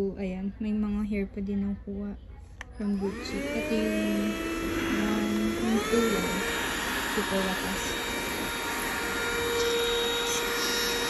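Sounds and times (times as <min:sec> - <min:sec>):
handheld vacuum motor whine: 0:02.8 - 0:11.0.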